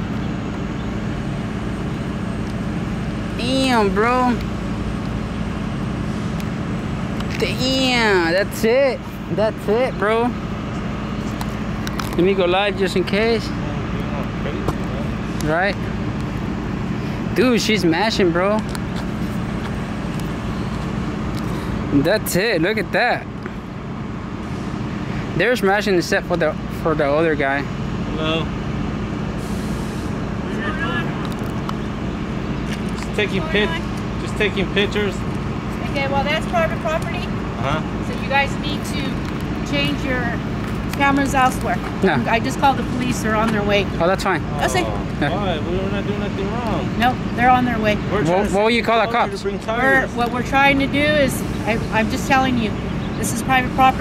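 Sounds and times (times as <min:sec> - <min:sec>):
heavy truck engine idling: 0:00.0 - 0:54.0
vehicle rumble: 0:00.0 - 0:54.0
air brakes hiss: 0:29.4 - 0:30.2.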